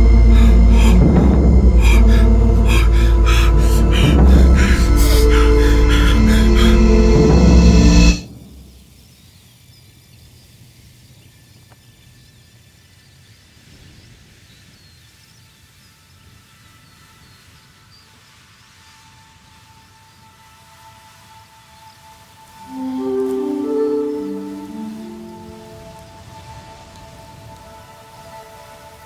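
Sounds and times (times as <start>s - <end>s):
tense music: 0.0s - 8.8s, 22.6s - 29.0s
faint low rumble: 0.0s - 9.0s
soft held music note: 22.6s - 26.3s.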